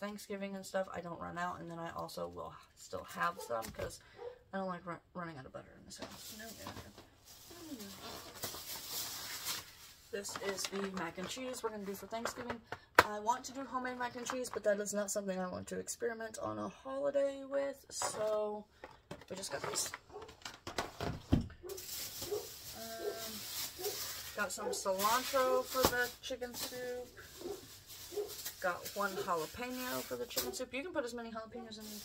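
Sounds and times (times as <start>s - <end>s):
plastic bag rustling: 6.0s - 12.1s, 19.4s - 32.0s
packaging clicking and crinkling: 18.9s - 21.0s.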